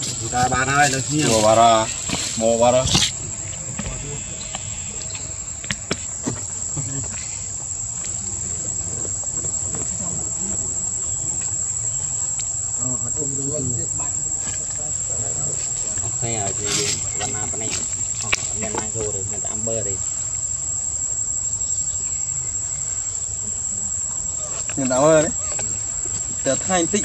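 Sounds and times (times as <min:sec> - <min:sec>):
faint voices: 0:00.0 - 0:21.0, 0:22.0 - 0:27.0
insects droning: 0:00.0 - 0:27.0.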